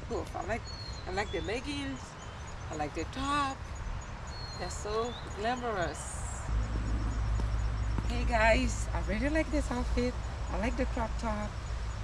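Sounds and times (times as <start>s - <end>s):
faint outdoor background noise: 0.0s - 12.0s
wind rumble on microphone: 0.0s - 12.0s.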